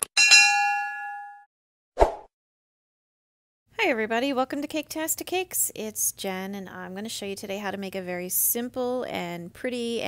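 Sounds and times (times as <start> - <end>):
bright bell ding: 0.1 - 1.5.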